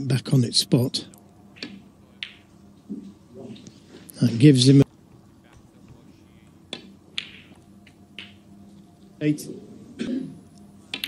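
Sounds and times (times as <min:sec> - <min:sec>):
cue tip striking cue ball: 0:01.6 - 0:03.6, 0:06.7 - 0:08.4
snooker balls colliding: 0:01.6 - 0:03.6, 0:06.7 - 0:08.5.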